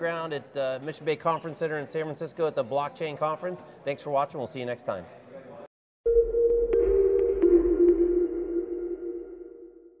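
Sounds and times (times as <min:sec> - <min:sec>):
sustained synthesizer tones: 0:06.1 - 0:10.0.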